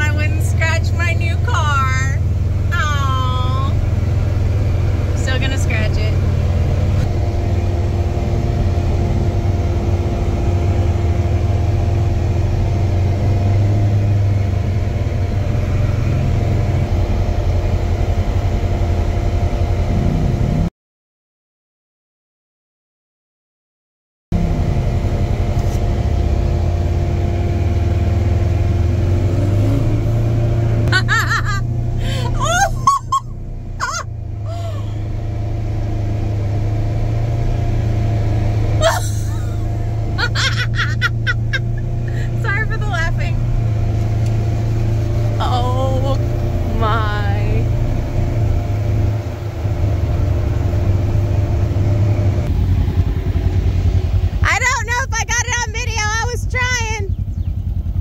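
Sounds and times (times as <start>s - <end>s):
vehicle engine rumbling: 0.0s - 20.7s, 24.3s - 58.0s
people calling out: 30.9s - 33.2s, 38.8s - 43.4s.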